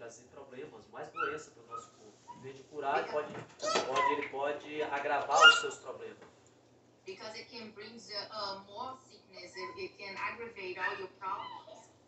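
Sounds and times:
baby squealing: 3.6s - 4.3s, 5.3s - 5.7s.

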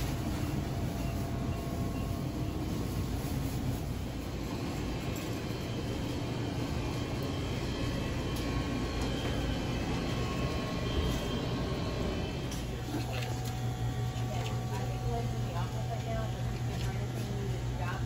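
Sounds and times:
grocery store background rumble: 0.0s - 18.0s.

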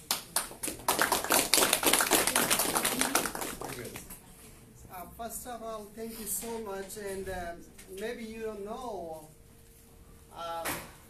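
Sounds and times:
small audience clapping: 0.0s - 4.2s.

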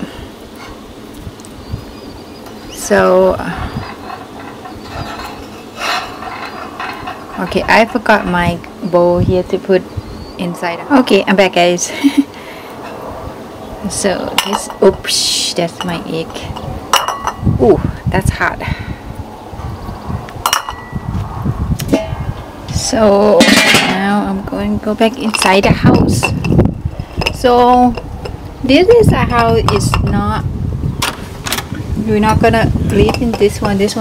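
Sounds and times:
wind rumble on microphone: 0.0s - 11.9s, 12.8s - 34.0s
eggs rattling on grill grate: 2.3s - 9.0s, 13.9s - 17.5s, 24.8s - 30.4s, 32.3s - 34.0s.

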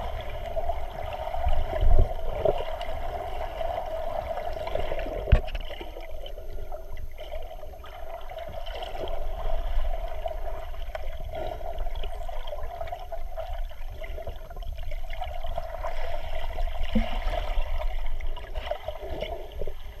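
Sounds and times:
muffled rush of water: 0.0s - 20.0s.

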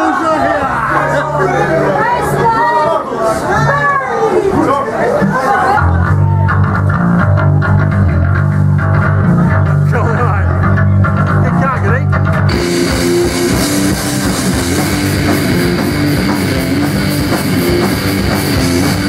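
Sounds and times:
crowd voices: 0.0s - 19.0s
guitar and bass notes: 5.0s - 19.0s
punk band playing: 5.0s - 19.0s
drums and cymbals crashing: 12.4s - 19.0s.

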